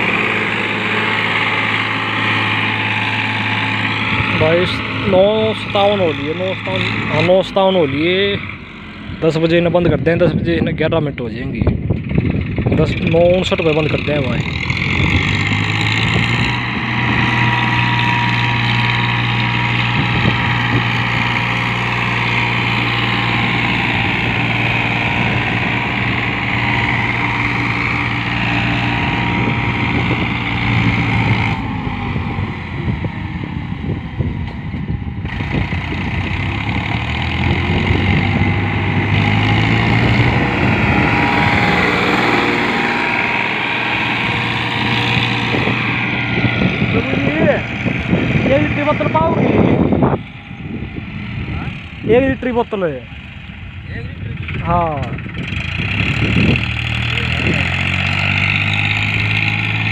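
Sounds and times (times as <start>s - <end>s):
diesel tractor engine under load: 0.0s - 59.9s.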